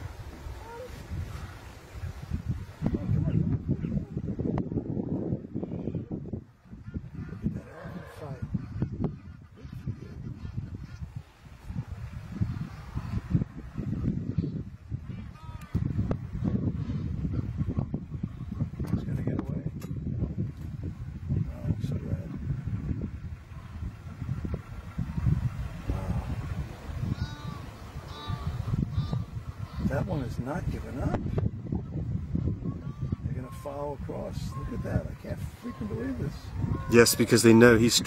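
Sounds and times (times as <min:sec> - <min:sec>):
animal calls: 0:27.1 - 0:30.0.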